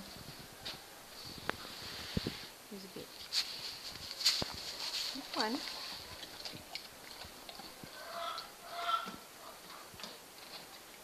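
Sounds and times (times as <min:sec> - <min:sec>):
horse chewing: 0:03.8 - 0:11.0.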